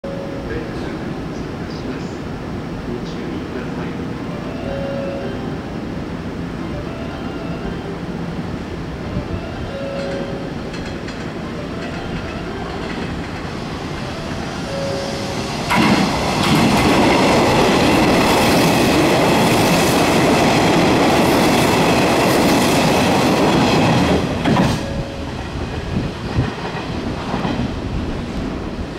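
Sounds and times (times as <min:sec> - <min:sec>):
train passing at speed: 0:00.1 - 0:28.9
high steady tones: 0:03.8 - 0:20.4.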